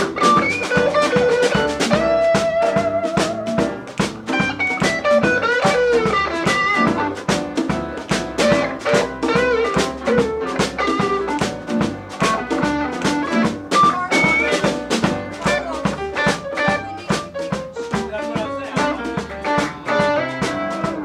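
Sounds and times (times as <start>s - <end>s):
blues band playing: 0.0s - 21.0s
electric guitar lead with bent notes: 0.0s - 21.0s.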